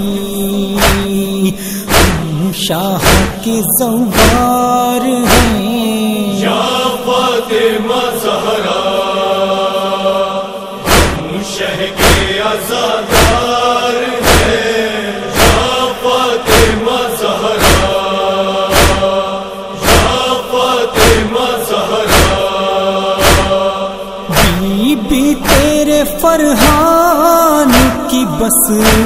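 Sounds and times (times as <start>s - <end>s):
male chorus chanting drone: 0.0s - 29.0s
person chanting a lament: 0.0s - 29.0s
rhythmic chest-beating strikes: 0.7s - 5.7s, 10.6s - 29.0s.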